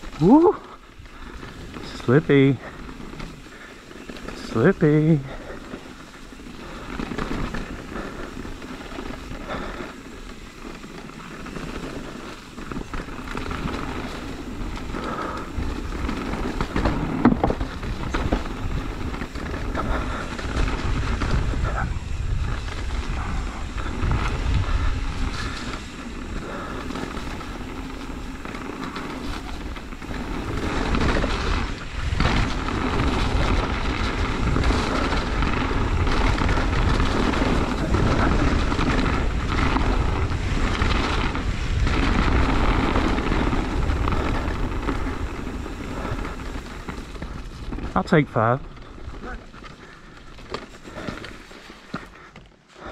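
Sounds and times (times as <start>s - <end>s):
tyres rumbling over dirt: 0.0s - 52.9s
wind buffeting microphone: 12.8s - 51.1s.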